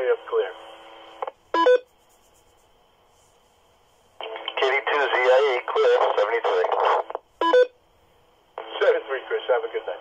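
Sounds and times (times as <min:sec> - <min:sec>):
voice through radio speaker: 0:04.2 - 0:07.1.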